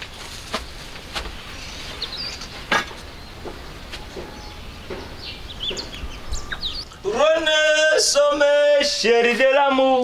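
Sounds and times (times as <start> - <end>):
small birds chirping: 0.0 - 7.3
person singing loudly: 7.0 - 10.0.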